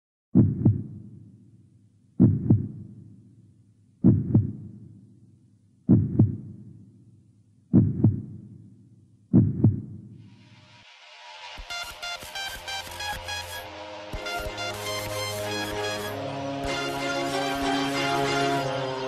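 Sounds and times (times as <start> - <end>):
heartbeat thumps: 0.3 - 1.2, 2.2 - 3.1, 4.0 - 5.0, 5.9 - 6.9, 7.7 - 8.7, 9.3 - 10.2.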